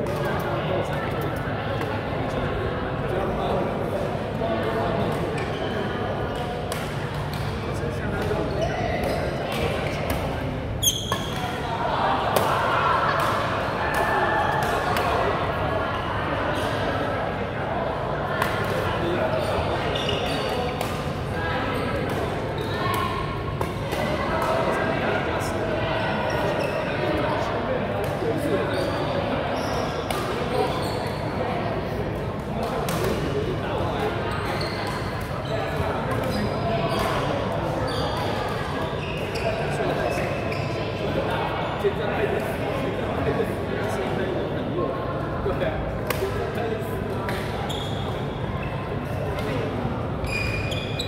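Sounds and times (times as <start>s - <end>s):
chatter of many voices: 0.0s - 51.0s.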